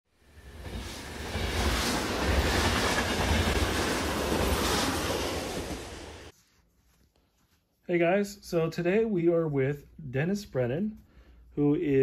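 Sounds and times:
train rumbling: 0.2s - 6.3s.

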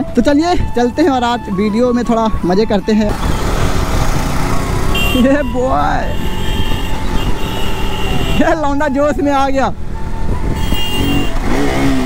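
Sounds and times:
motorcycle engine running: 3.1s - 8.2s.

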